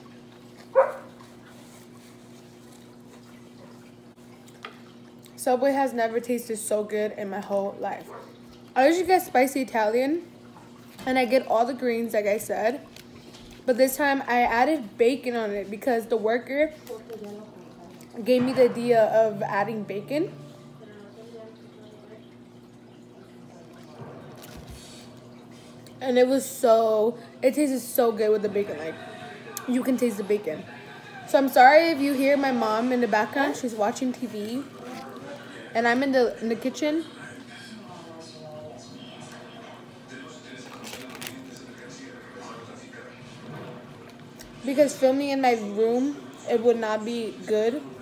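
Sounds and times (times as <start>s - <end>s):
television playing faintly: 0.0s - 48.0s.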